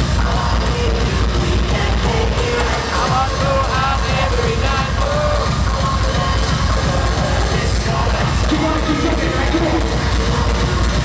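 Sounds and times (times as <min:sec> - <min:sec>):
loud live music with heavy bass: 0:00.0 - 0:11.0.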